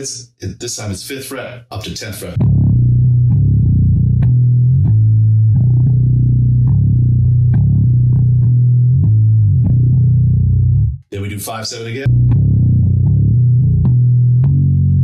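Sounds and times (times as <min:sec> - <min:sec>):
bass guitar riff played with pick: 0:02.4 - 0:11.0, 0:12.0 - 0:15.0.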